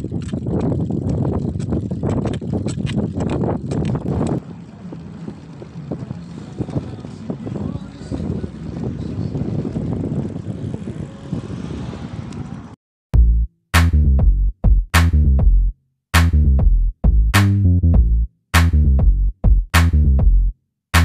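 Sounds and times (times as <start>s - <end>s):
bike rattling over pavers: 0.0s - 11.2s
drum-machine music beat: 13.2s - 21.0s.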